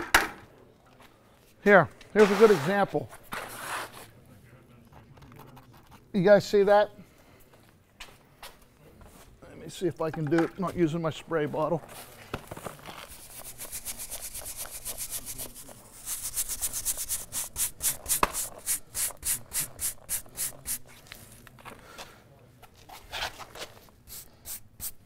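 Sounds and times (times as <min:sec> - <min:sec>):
brush scrubbing brick: 0:13.1 - 0:20.8.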